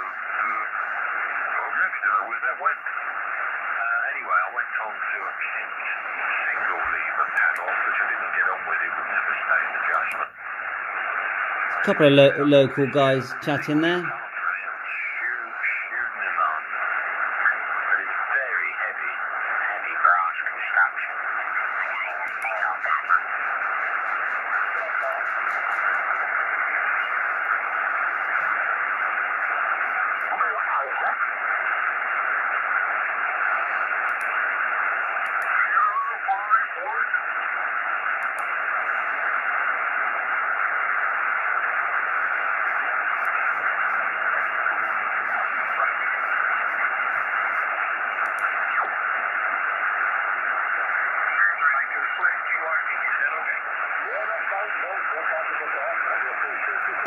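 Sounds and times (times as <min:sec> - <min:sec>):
garbled radio voices: 0:00.0 - 0:57.0
radio band noise hiss: 0:00.0 - 0:57.0.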